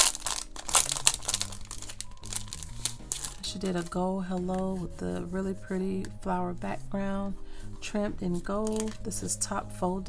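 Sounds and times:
cellophane sleeve crinkling: 0.0s - 4.6s, 8.6s - 9.1s.

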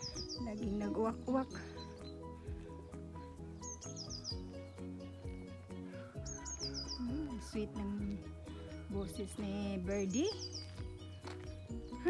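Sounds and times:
high falling bird chirps: 0.0s - 0.7s, 1.5s - 5.2s, 5.9s - 7.5s, 10.0s - 10.8s
background music with bass: 0.0s - 12.0s.

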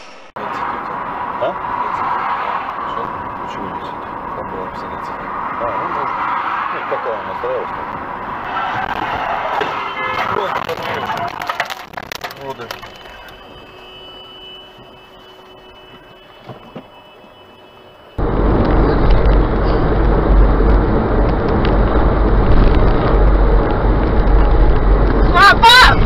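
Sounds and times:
car road noise at highway speed: 0.0s - 26.0s.

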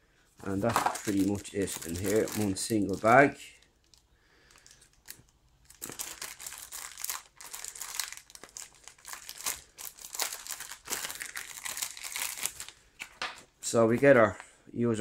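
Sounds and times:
plastic bag crinkling: 0.4s - 13.4s.

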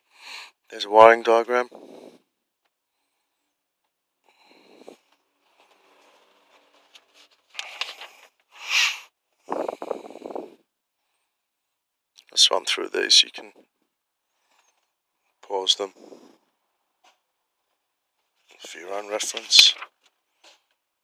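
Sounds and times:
paper pages being turned: 5.6s - 8.4s, 18.5s - 20.7s.

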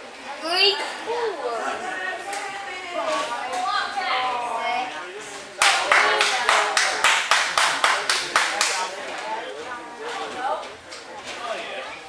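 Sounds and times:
hands clapping in rhythm: 5.6s - 9.0s.

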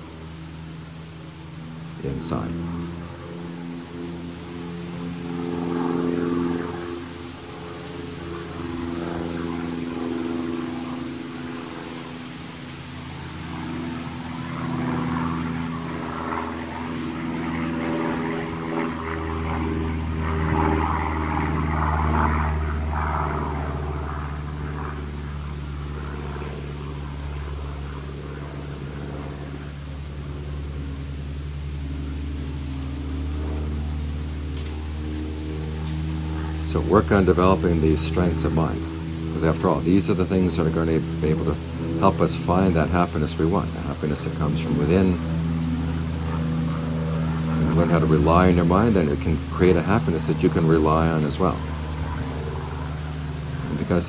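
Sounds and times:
motor humming: 0.0s - 54.0s.

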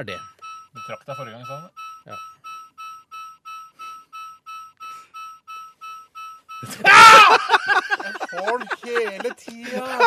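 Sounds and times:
repeated electronic beeps: 0.0s - 9.3s.

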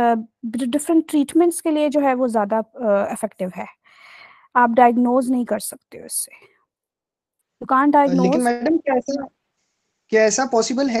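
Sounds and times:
person speaking over video call: 7.6s - 9.3s, 10.2s - 11.0s.

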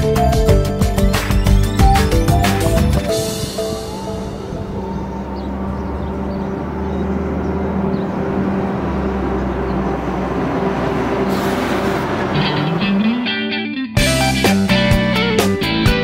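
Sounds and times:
guitar music: 0.0s - 11.3s, 12.0s - 16.0s
bus engine drone: 0.0s - 16.0s
tyre and road noise: 1.0s - 15.8s.

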